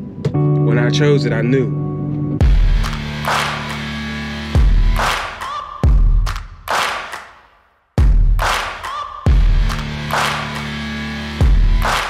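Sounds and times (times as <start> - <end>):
deep bass hits: 2.4 - 3.6.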